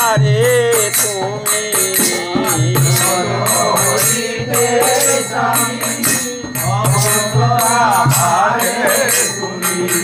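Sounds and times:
man singing: 0:00.0 - 0:10.0
metallic percussion: 0:00.0 - 0:10.0.

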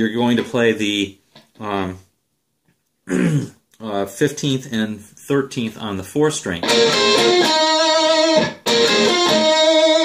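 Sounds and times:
electric guitar lick: 0:06.6 - 0:10.0.

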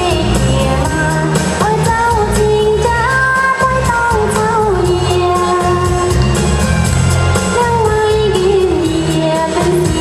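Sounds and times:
bass line: 0:00.0 - 0:10.0.

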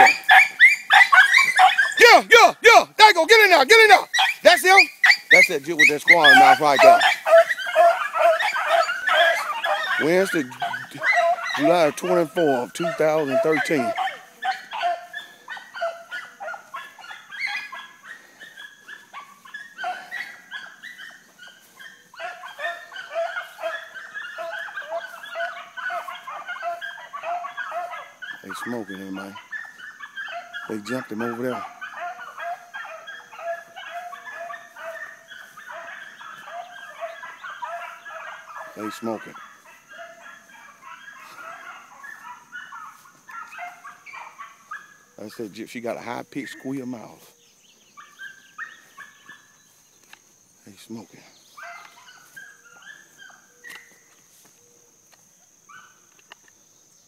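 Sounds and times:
dog squealing: 0:00.0 - 0:02.3, 0:03.5 - 0:44.9
hounds yipping and barking: 0:00.0 - 0:56.6.

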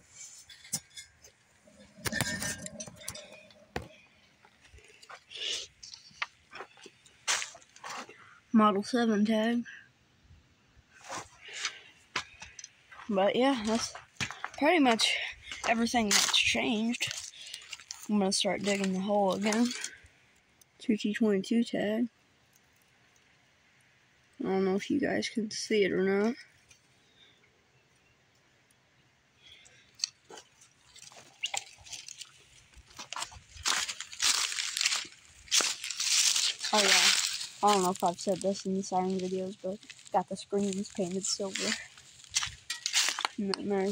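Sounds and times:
footsteps crunching dry leaves: 0:01.6 - 0:08.1, 0:11.0 - 0:19.9, 0:30.8 - 0:43.9.

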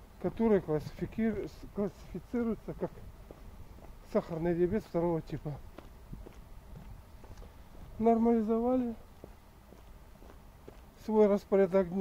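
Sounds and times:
footsteps on dry forest ground: 0:01.0 - 0:12.0.

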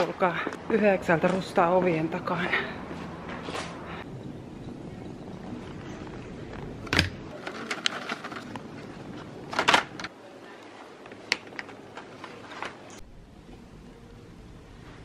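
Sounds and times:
shop background noise: 0:00.0 - 0:15.0.

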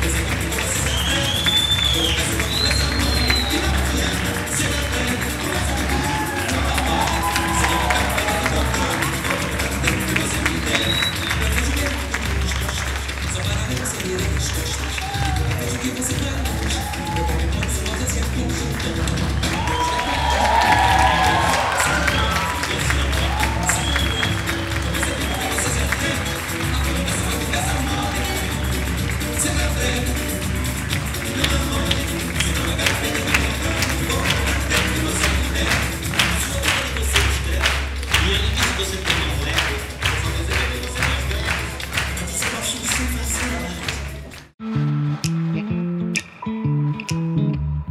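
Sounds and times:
audience applauding and cheering: 0:00.0 - 0:46.1
rhythmic clapping: 0:00.0 - 0:47.4
samba music: 0:00.0 - 0:47.9
people whooping: 0:00.5 - 0:12.7, 0:14.6 - 0:30.0.

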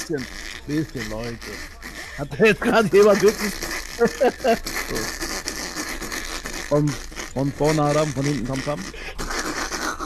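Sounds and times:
man speaking: 0:00.0 - 0:05.2, 0:06.7 - 0:09.1
man laughing breathlessly: 0:01.9 - 0:05.2, 0:08.5 - 0:10.0.

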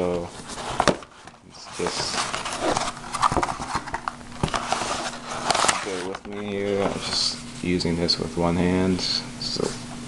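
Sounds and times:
paper rustling: 0:00.1 - 0:07.4.

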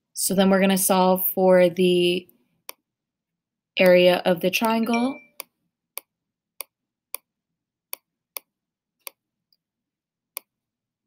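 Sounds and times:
person speaking: 0:03.8 - 0:05.3.

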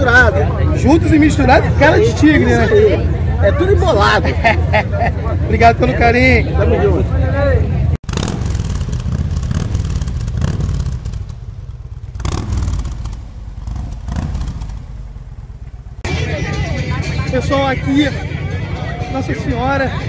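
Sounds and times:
man talking: 0:00.0 - 0:07.8, 0:17.2 - 0:18.3
crowd chatter: 0:00.0 - 0:08.0, 0:16.0 - 0:20.0
motorcycle engine rumbling: 0:00.0 - 0:20.0.

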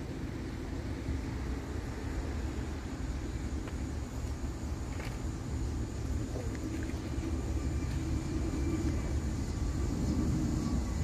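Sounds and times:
train approaching rumble: 0:00.0 - 0:11.0.

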